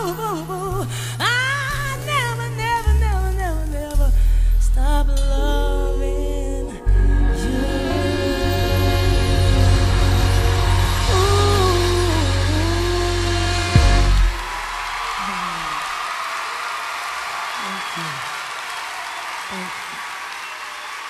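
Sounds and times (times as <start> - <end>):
live soul ballad: 0.0 - 14.6
audience applauding and cheering: 8.5 - 21.0.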